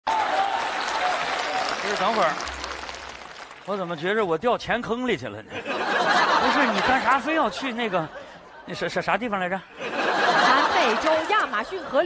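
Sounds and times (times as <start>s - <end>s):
studio audience applauding: 0.0s - 4.3s, 6.0s - 7.4s
man talking: 3.6s - 5.6s, 6.4s - 9.7s.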